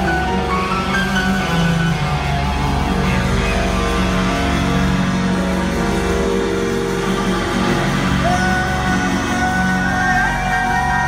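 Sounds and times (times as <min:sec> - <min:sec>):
electric guitar: 0:00.0 - 0:11.0
live rock band playing: 0:00.0 - 0:11.0.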